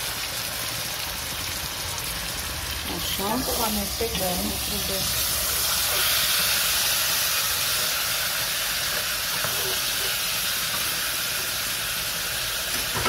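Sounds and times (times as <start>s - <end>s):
vegetables sizzling in a pan: 0.0s - 13.0s.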